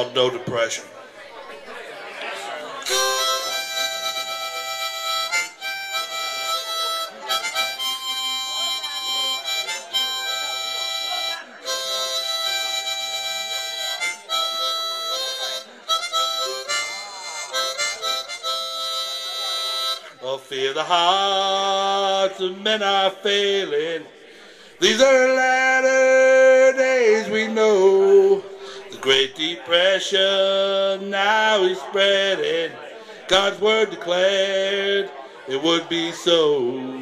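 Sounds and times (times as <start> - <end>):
harmonica playing chords: 2.8 - 20.2.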